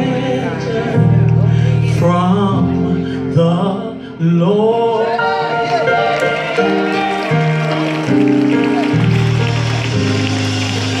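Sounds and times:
keyboard chords: 0:00.0 - 0:11.0.

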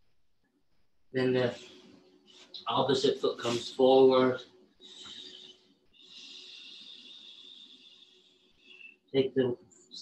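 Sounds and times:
faint breathing: 0:01.4 - 0:02.6, 0:04.8 - 0:09.1.

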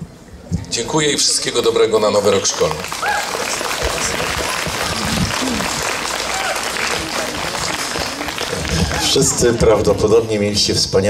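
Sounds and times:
faint voices: 0:00.1 - 0:10.6
audience applauding: 0:01.6 - 0:10.3.

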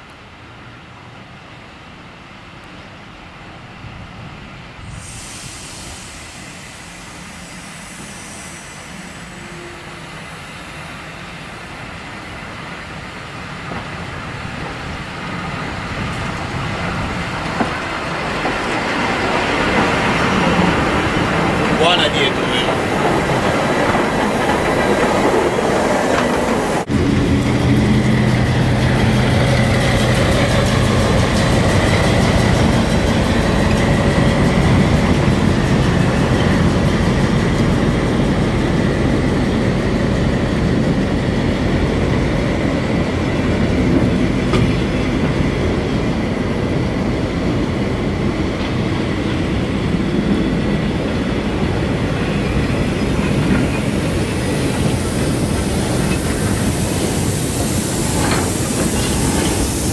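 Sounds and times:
steam locomotive rolling slowly: 0:00.0 - 0:59.9
diesel locomotive engine humming: 0:02.4 - 0:59.9
train wheels on rails: 0:04.1 - 0:59.9.

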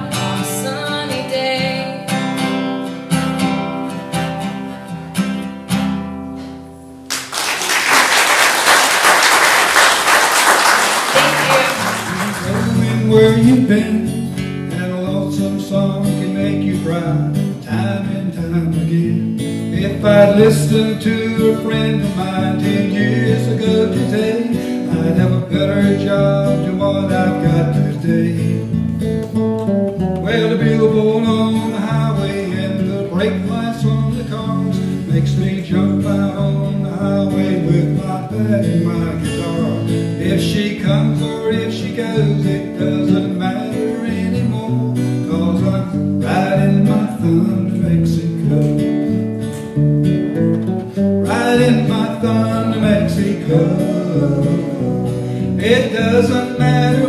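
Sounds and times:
acoustic guitar strumming: 0:00.0 - 0:07.3, 0:09.3 - 0:57.0
electric bass guitar: 0:12.6 - 0:57.0.

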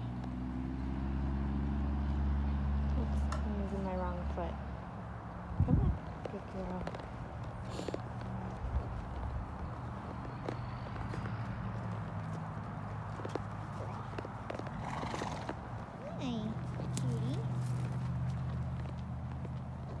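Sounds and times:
horse hooves on dirt: 0:05.4 - 0:20.0.

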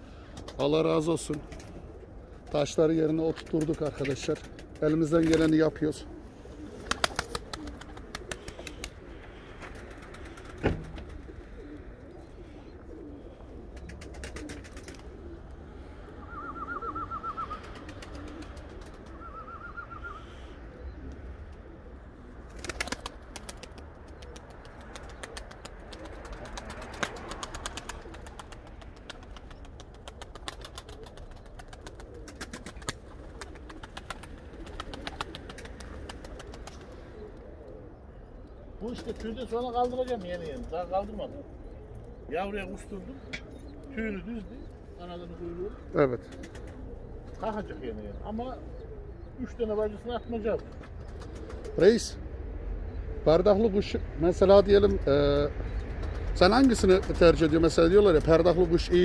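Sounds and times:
pigeons cooing: 0:00.0 - 0:59.0
warbling bird call: 0:06.0 - 0:28.5.

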